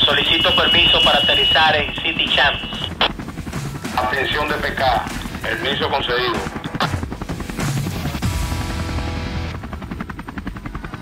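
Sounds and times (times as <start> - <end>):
background music: 0.0 - 11.0
helicopter rotor chop: 0.0 - 11.0.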